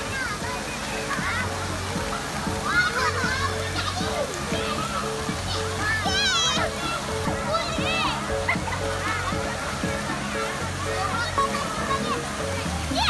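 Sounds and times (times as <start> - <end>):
children shouting: 0.0 - 13.0
music with repeating beat: 0.0 - 13.0
water spraying and splashing: 0.0 - 13.0.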